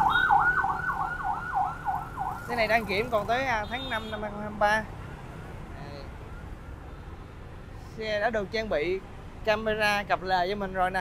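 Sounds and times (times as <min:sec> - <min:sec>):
siren on fast yelp: 0:00.0 - 0:02.5.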